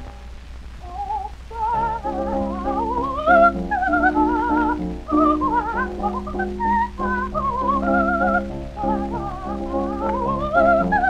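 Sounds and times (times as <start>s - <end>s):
soprano singing high runs: 0.0s - 11.0s
sustained accompaniment: 0.0s - 11.0s.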